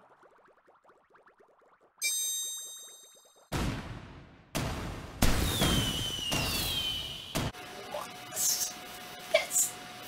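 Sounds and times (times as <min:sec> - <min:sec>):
firework bursts: 0:05.2 - 0:07.5
falling firework whistle: 0:05.3 - 0:07.5.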